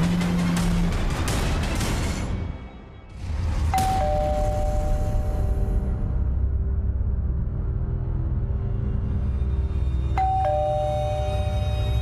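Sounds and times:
low background music: 0:00.0 - 0:12.0
doorbell ding-dong chime: 0:03.8 - 0:05.2, 0:10.2 - 0:11.7.

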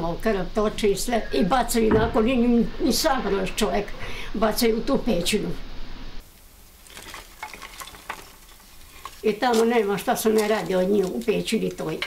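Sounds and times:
faint crackling hiss: 0:00.0 - 0:12.0
wooden sticks clicking: 0:07.4 - 0:12.0.

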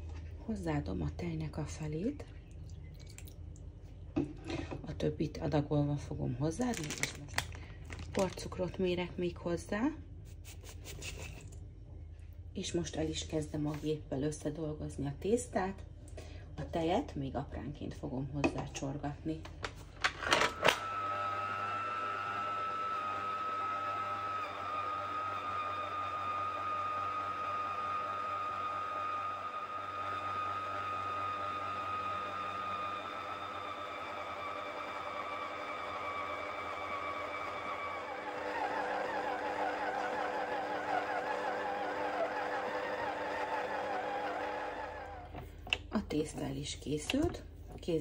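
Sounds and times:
stand mixer motor whine: 0:20.3 - 0:45.5.

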